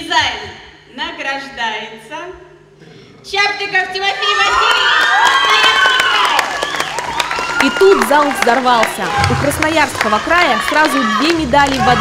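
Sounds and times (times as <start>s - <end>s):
audience cheering and screaming: 4.2s - 12.0s
people clapping: 4.3s - 12.0s.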